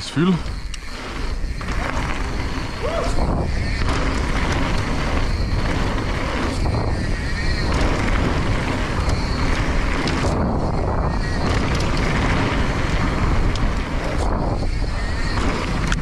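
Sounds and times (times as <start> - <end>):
bike rattling: 0.0 - 16.0
wind rushing over microphone: 0.0 - 16.0.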